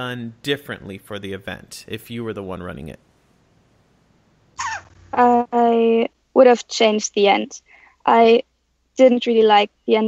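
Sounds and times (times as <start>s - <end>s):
person speaking: 0.0s - 3.0s.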